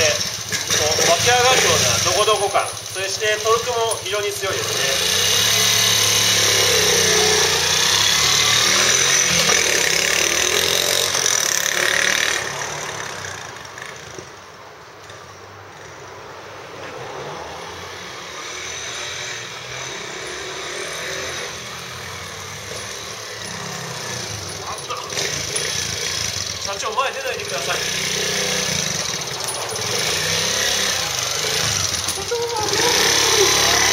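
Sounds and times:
motorcycle engine pulling away: 0.0 - 14.4, 17.2 - 33.9.

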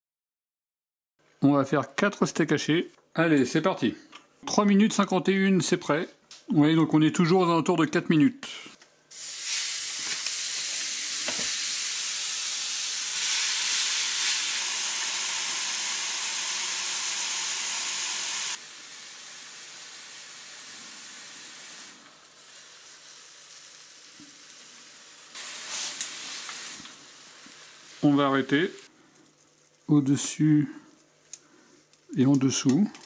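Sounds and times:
beef patties sizzling on grill: 9.1 - 30.5.

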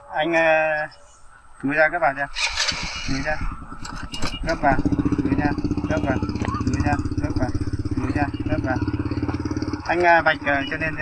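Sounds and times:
small engine idling: 2.3 - 11.0.

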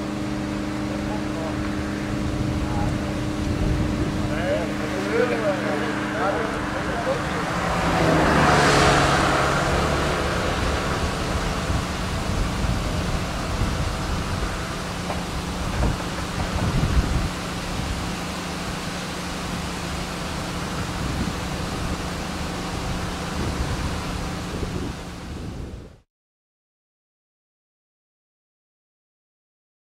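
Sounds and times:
motor vehicle passing: 0.0 - 25.9
low engine hum: 0.0 - 26.0.

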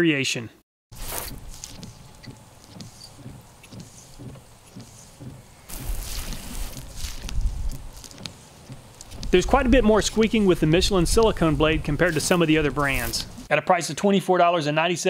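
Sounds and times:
wiper blade squeaking on windshield: 0.9 - 13.5.

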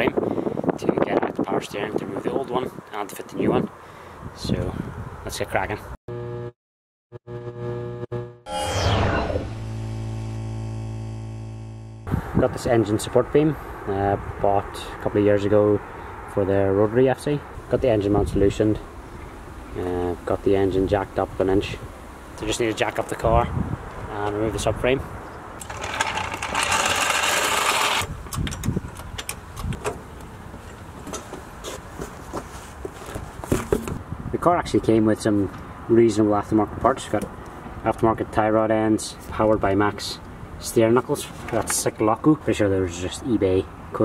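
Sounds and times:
synthesized low hum with tones: 6.1 - 6.6, 7.2 - 12.3
falling synth sweep: 7.3 - 12.1
loud mechanical rattle: 25.6 - 28.8.

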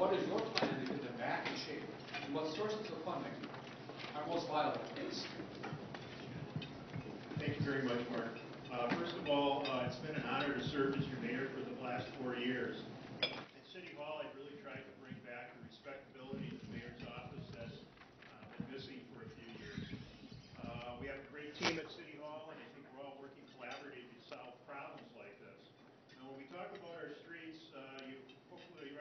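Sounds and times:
faint ticks and knocks: 3.4 - 11.4, 14.5 - 21.3.

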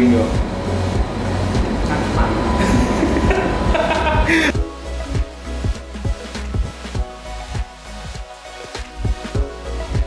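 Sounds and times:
low rumble: 0.0 - 5.7
faint steady whine: 0.0 - 5.8.

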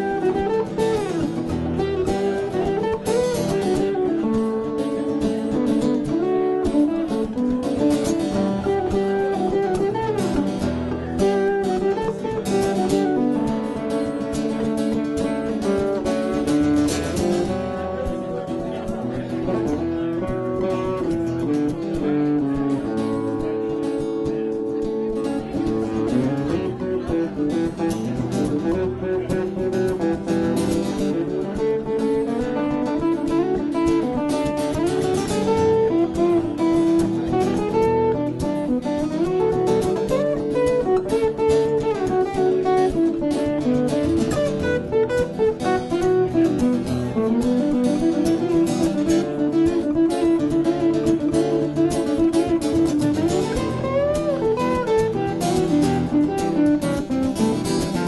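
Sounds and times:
acoustic guitars playing country: 0.0 - 58.0
guitar melody with bent notes: 0.0 - 58.0.

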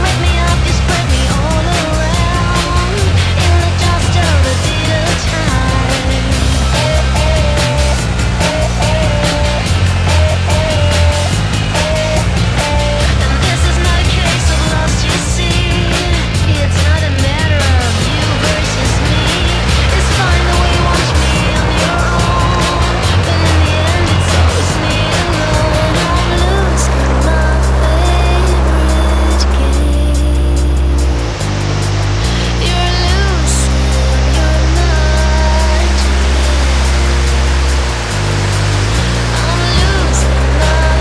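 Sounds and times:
busy drums: 0.0 - 41.0
song with heavy bass line: 0.0 - 41.0.

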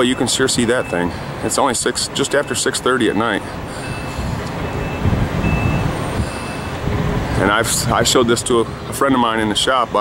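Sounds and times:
faint high beeps: 0.0 - 1.1, 2.2 - 6.8
motor vehicle rumble: 0.0 - 10.0.

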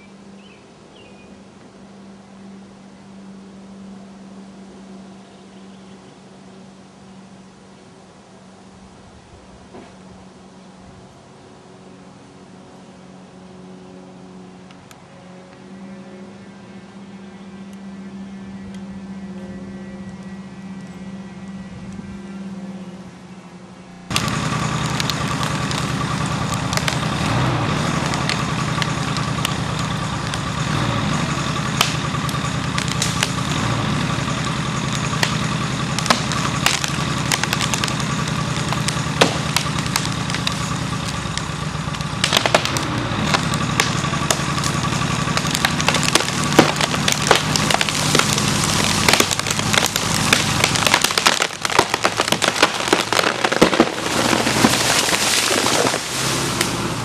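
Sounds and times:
engine idling and revving: 11.6 - 57.0
wood cracking and splintering: 24.1 - 57.0.

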